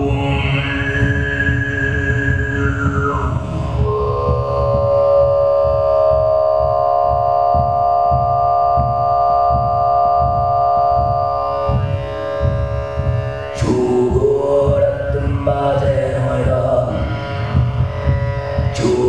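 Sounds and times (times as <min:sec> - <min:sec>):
throat singing: 0:00.0 - 0:09.0, 0:11.7 - 0:19.0
amplified heartbeat: 0:00.0 - 0:19.0.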